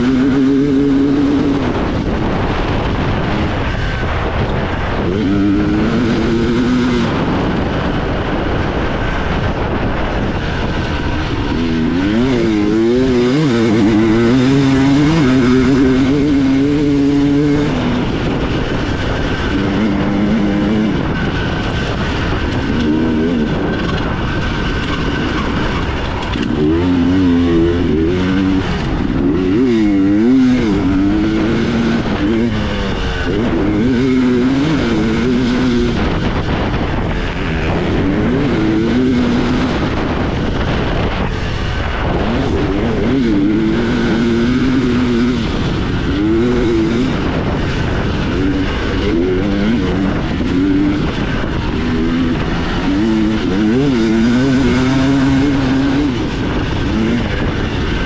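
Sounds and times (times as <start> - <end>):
dirt bike engine racing: 0.0 - 58.0
wind and tyre noise: 0.0 - 58.0.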